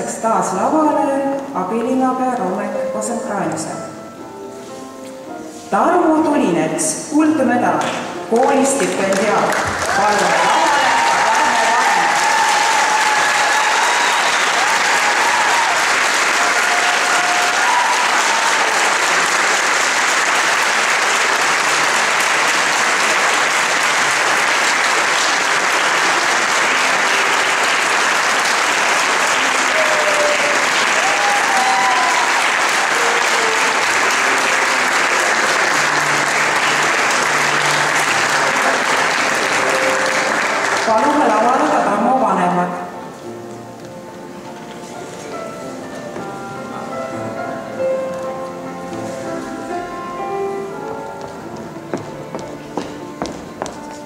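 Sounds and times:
audience applauding: 0:07.8 - 0:41.8.

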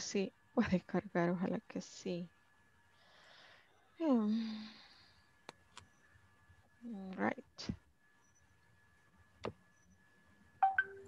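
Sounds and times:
electronic tone blips: 0:10.6 - 0:11.0
faint steady high tone: 0:10.6 - 0:11.0.

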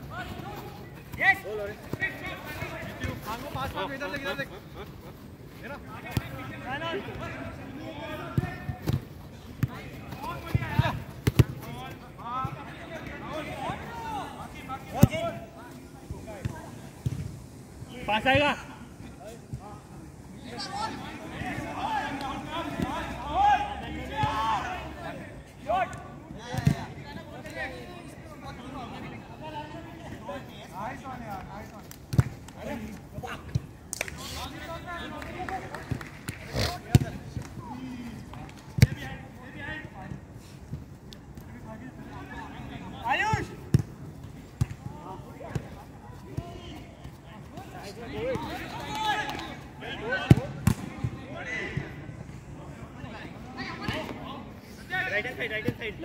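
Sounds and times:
players shouting: 0:20.4 - 0:26.8, 0:44.8 - 0:52.0.

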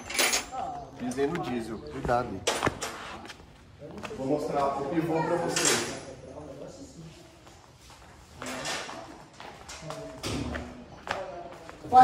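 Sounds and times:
footsteps on tiled floor: 0:00.9 - 0:05.1, 0:06.5 - 0:12.0.

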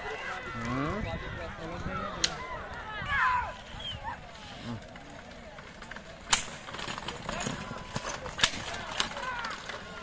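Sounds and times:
spectators shouting: 0:00.0 - 0:04.7
sharp crack: 0:06.2 - 0:06.7.

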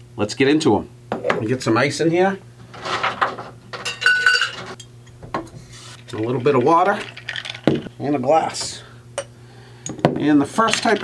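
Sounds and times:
ice clattering in metal shaker: 0:06.1 - 0:07.8.

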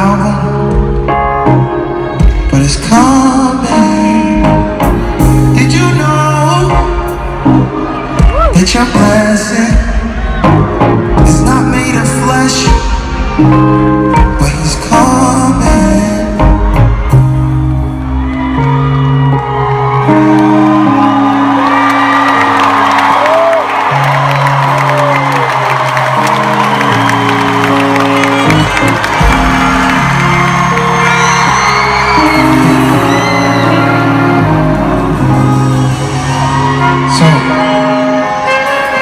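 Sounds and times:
crowd cheering and whooping: 0:07.1 - 0:09.2, 0:15.9 - 0:39.0.

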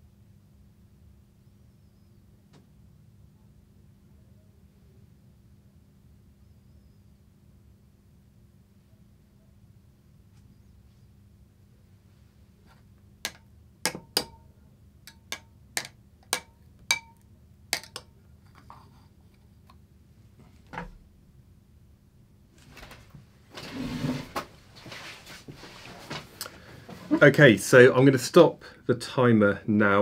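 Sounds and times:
faint steady hum: 0:00.0 - 0:30.0
soft rustling handling noise: 0:22.5 - 0:27.4.

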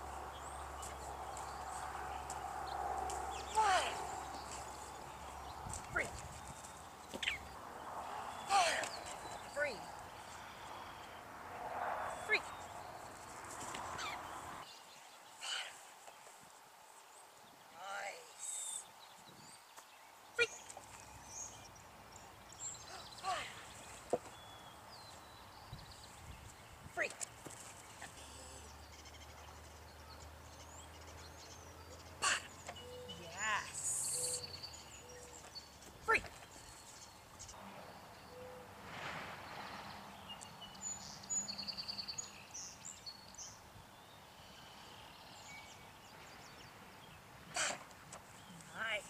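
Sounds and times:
distant birds chirping: 0:00.0 - 0:49.0
woman saying a word: 0:03.6 - 0:04.0, 0:33.1 - 0:34.4.

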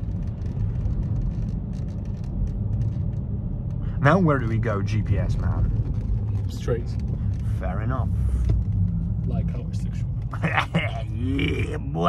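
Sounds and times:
light clicks and rattles: 0:00.0 - 0:10.4
car engine running: 0:00.0 - 0:12.0
tyres rumbling on cobblestones: 0:00.0 - 0:12.0.

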